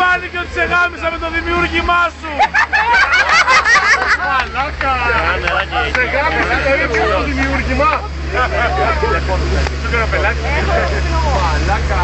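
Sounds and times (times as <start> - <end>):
car low hum: 0.0 - 12.0
people talking: 0.0 - 12.0.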